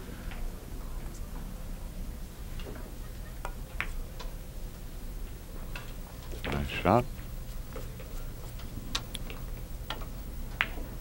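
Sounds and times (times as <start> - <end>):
pool balls clicking: 2.5 - 11.0.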